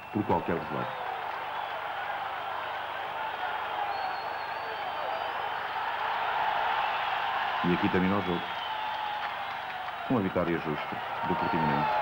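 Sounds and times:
stadium crowd din: 0.0s - 12.0s
faint high whistle: 3.8s - 5.8s.

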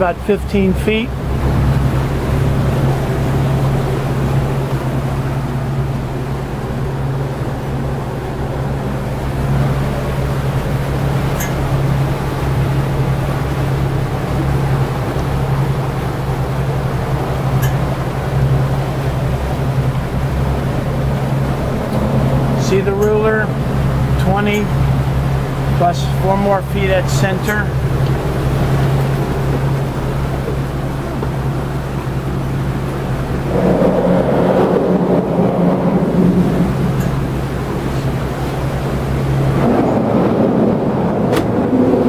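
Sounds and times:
boat engines droning: 0.0s - 42.0s.

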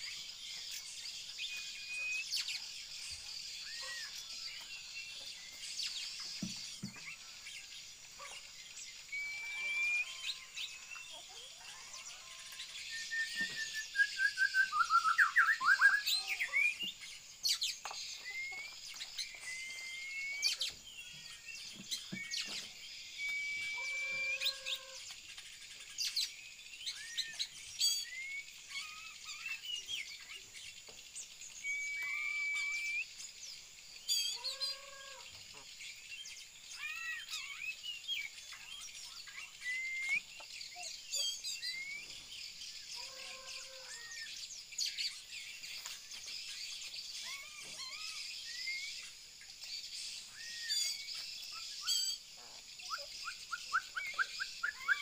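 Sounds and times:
songbirds chirping and singing: 0.0s - 55.0s.

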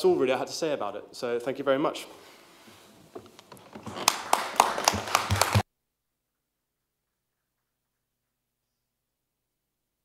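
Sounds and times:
people clapping: 3.8s - 5.6s.

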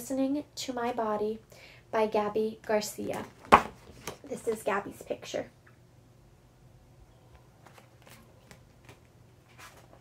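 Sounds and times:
book pages rustling and flicking: 7.6s - 10.0s.

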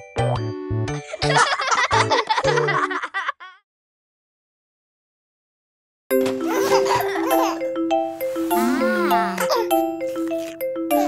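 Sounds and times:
baby and children laughing: 1.1s - 3.6s, 6.3s - 7.8s, 8.8s - 11.0s
upbeat children's song: 8.4s - 10.4s.

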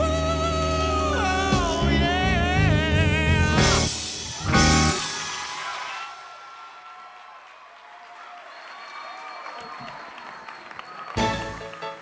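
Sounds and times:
loud music: 0.0s - 6.1s, 11.2s - 12.0s
audience applause: 4.3s - 12.0s.

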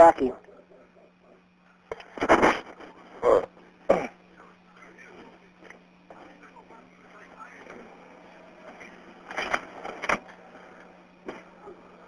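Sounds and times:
faint voices on telephone line: 0.0s - 9.6s
steady hum: 0.0s - 12.0s.

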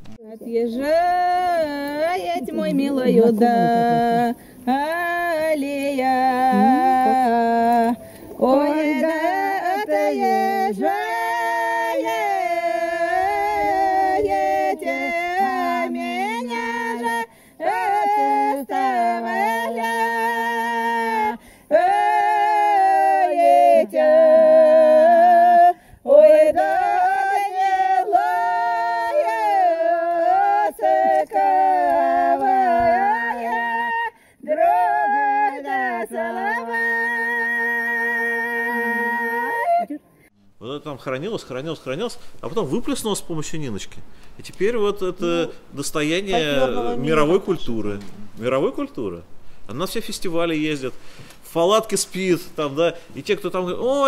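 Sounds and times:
women singing unaccompanied: 0.1s - 40.3s, 46.3s - 47.4s.

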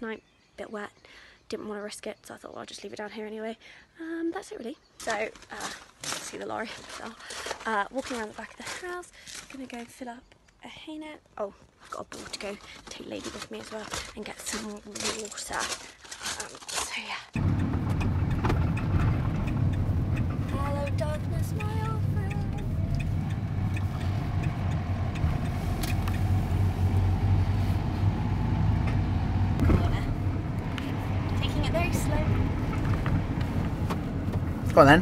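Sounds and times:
lorry engine and road drone: 17.4s - 35.0s.

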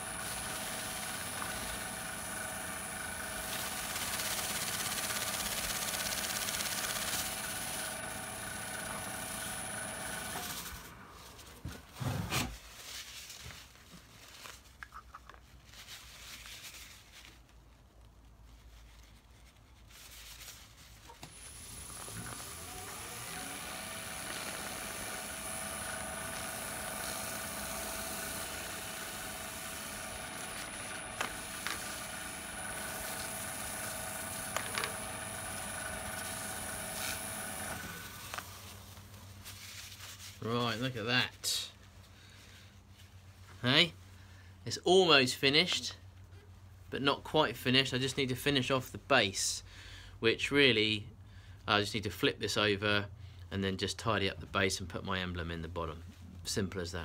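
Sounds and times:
wood lathe motor whine: 0.0s - 11.0s, 21.2s - 38.8s.

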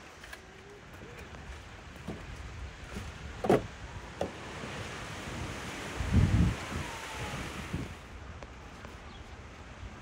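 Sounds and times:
wind buffeting microphone: 1.0s - 9.2s.

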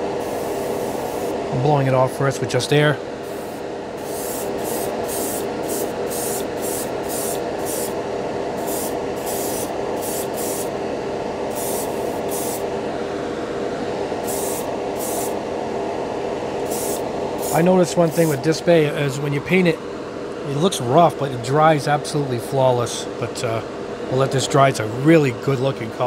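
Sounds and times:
steady background hum: 0.0s - 26.0s
airbrush spraying in short bursts: 0.2s - 1.4s, 3.2s - 8.0s, 8.6s - 10.7s, 11.5s - 12.6s, 14.2s - 15.4s, 16.6s - 18.4s.

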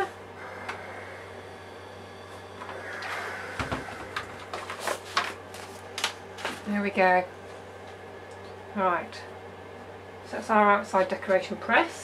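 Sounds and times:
paper rustling: 4.6s - 6.7s.

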